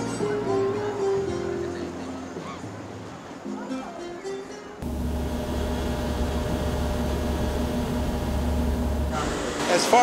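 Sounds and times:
machinery hum: 4.8 - 9.7.

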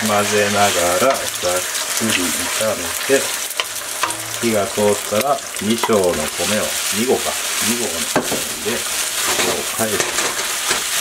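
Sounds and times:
rice and egg sizzling in wok: 0.0 - 11.0.

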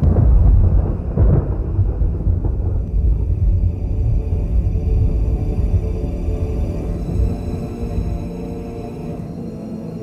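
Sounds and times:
deep thunder-like rumble: 0.0 - 7.6
faint dark music: 0.0 - 10.0.

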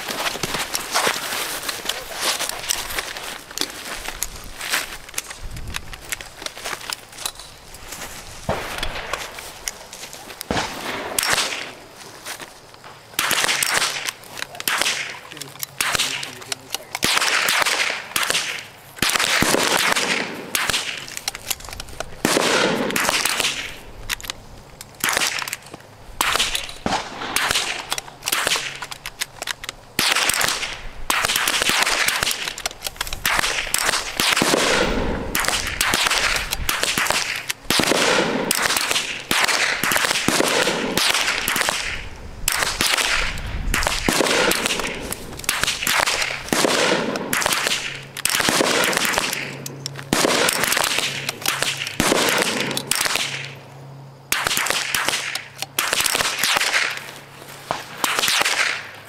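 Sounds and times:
rifle shots with echo: 10.5 - 11.8, 13.2 - 21.1, 22.2 - 23.8, 26.2 - 28.8, 30.0 - 53.5, 54.3 - 57.0, 57.7 - 58.9.

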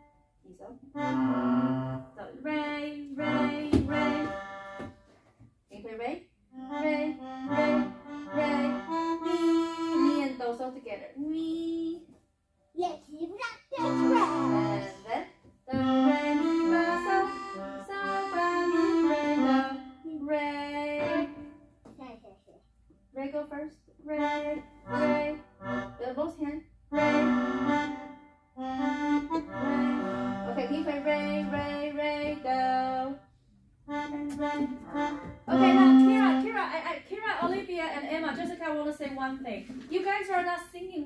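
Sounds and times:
electronic keyboard melody: 1.0 - 2.1, 6.6 - 10.3, 13.8 - 15.0, 15.8 - 20.0, 26.9 - 31.6, 33.9 - 36.6.

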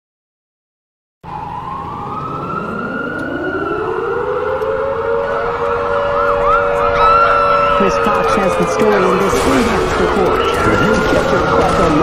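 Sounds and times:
sirens wailing: 1.2 - 12.0.

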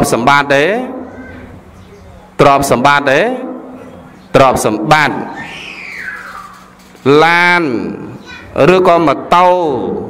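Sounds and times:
man's voice: 2.4 - 3.7.

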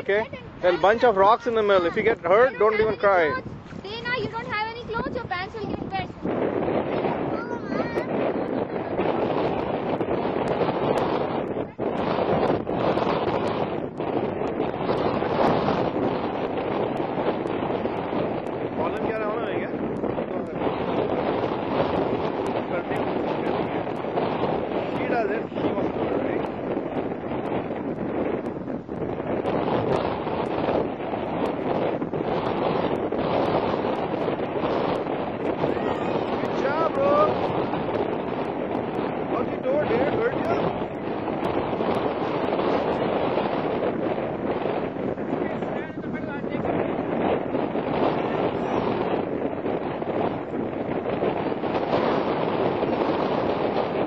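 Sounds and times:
wind blowing across microphone: 0.0 - 54.0.

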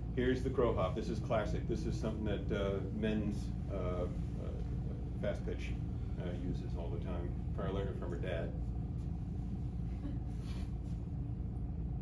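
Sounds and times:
low indoor room rumble: 0.0 - 12.0.

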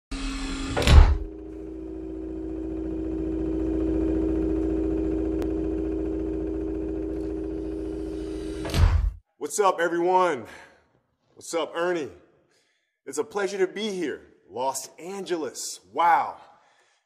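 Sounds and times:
electronic hum: 0.1 - 8.9.

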